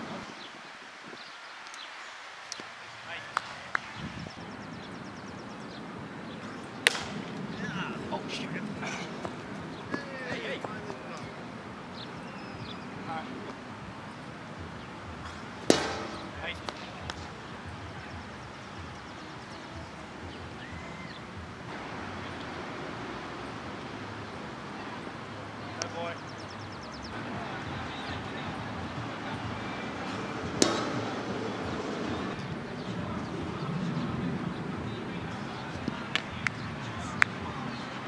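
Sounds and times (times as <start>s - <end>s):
faint distant voices: 2.6s - 38.0s.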